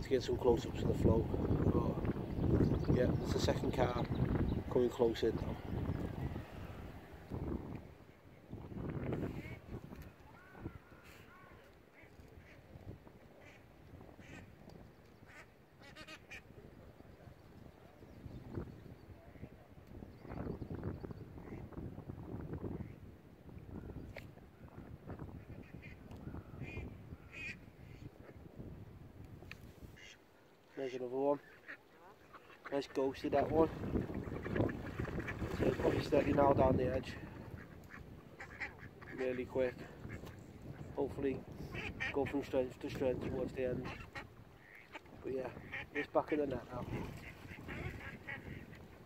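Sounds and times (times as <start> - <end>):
wind buffeting microphone: 0.0 - 11.6, 12.3 - 15.4, 16.4 - 30.1, 33.1 - 49.0.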